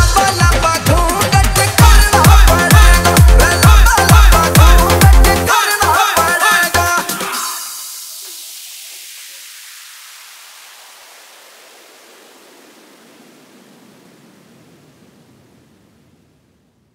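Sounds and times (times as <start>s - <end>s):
white noise sweep down: 2.0s - 16.9s.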